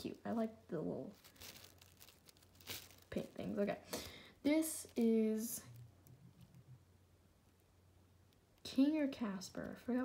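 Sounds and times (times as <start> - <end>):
faint plastic rustling: 0.0 - 10.0.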